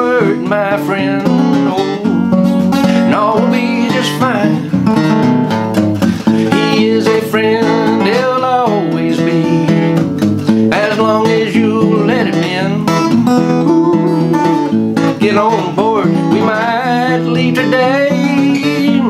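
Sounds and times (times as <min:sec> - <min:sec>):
man singing: 0:00.0 - 0:05.0, 0:06.1 - 0:19.0
acoustic guitar chords: 0:00.0 - 0:19.0.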